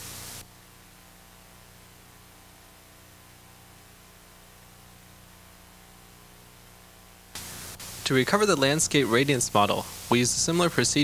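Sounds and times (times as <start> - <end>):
low mains hum: 0.0 - 11.0
tape hiss: 0.0 - 11.0.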